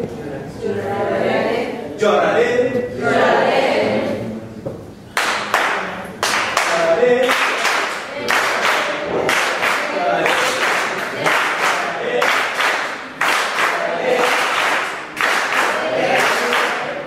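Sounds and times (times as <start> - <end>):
group of people singing: 0.5 - 4.6, 6.7 - 17.0
hand clapping: 5.1 - 17.0.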